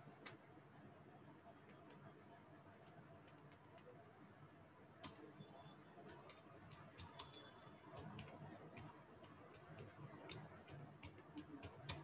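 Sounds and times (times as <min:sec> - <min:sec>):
computer keyboard key clicks: 0:06.1 - 0:12.0.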